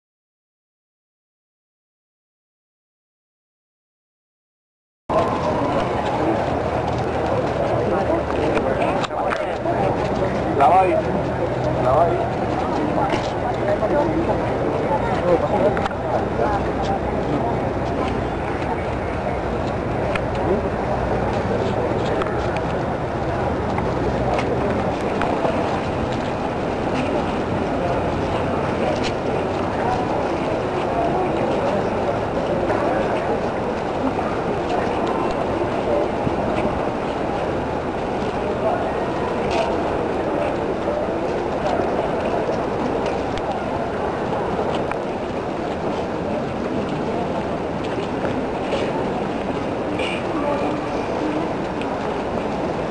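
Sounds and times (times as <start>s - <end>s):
crowd murmur and movement: 5.1s - 52.9s.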